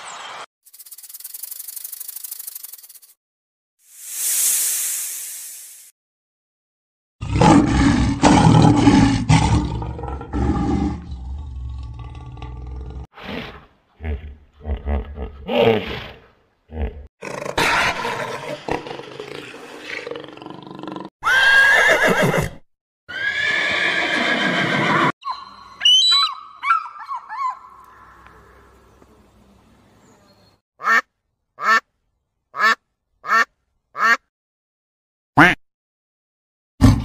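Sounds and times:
horses neighing: 0:21.2 - 0:22.5, 0:23.1 - 0:25.1
mallard quacking: 0:32.6 - 0:34.2.

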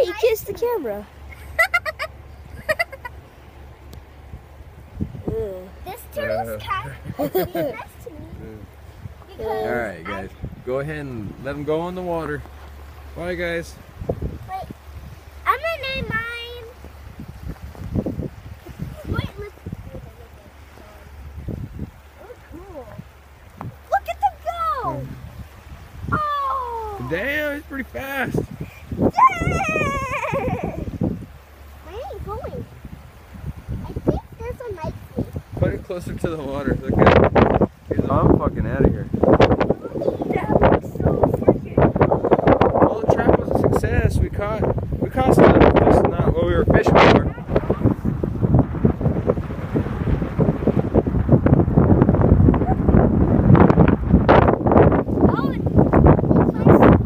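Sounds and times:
child's wordless exclamation: 0:00.0 - 0:01.1, 0:05.3 - 0:08.6, 0:09.2 - 0:10.3, 0:14.4 - 0:14.8, 0:15.4 - 0:16.8, 0:18.8 - 0:20.3, 0:23.8 - 0:25.2, 0:26.1 - 0:27.2, 0:28.8 - 0:31.0, 0:31.8 - 0:32.7, 0:33.8 - 0:35.4, 0:39.8 - 0:41.9, 0:55.2 - 0:55.7, 0:56.3 - 0:57.0
wind buffeting microphone: 0:00.0 - 0:57.0.

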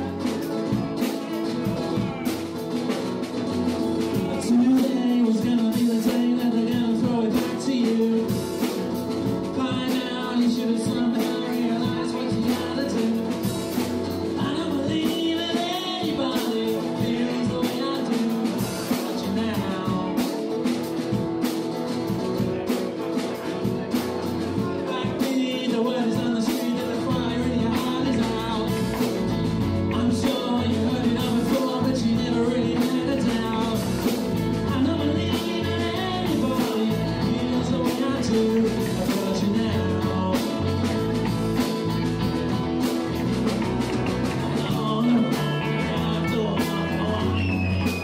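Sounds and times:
drum kit beat: 0:00.0 - 0:48.0
man singing: 0:00.0 - 0:48.0
rock band playing instrumental: 0:00.0 - 0:48.0.

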